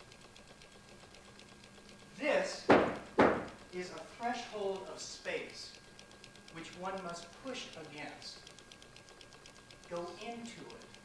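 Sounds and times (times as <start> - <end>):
faint even ticking: 0.0 - 11.0.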